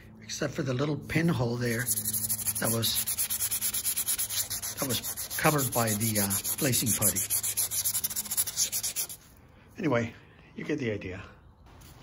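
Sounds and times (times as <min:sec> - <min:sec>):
wet sandpaper scrubbing: 0:01.2 - 0:09.3.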